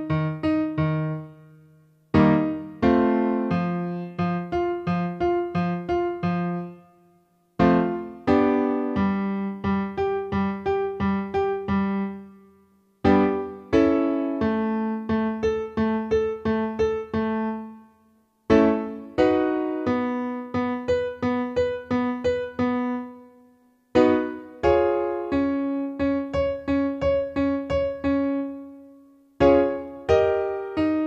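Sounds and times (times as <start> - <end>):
piano chords and short notes: 0.0 - 31.0.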